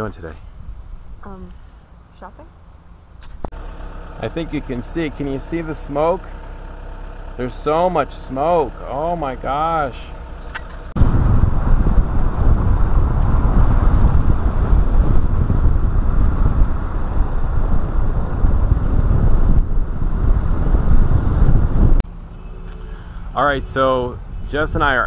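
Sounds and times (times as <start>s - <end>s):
car road noise: 0.0s - 25.0s
wind rushing over microphone: 10.8s - 22.0s.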